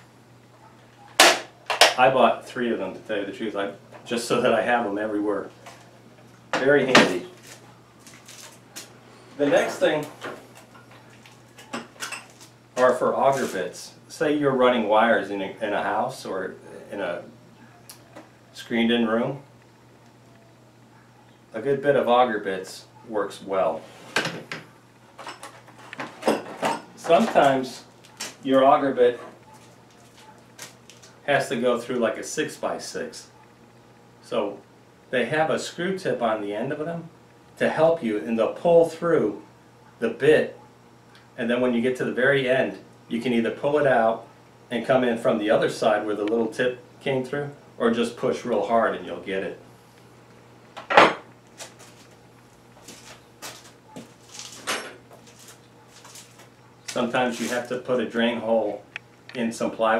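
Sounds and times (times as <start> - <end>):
plastic blister pack rustling: 7.4 - 8.9, 52.8 - 57.7.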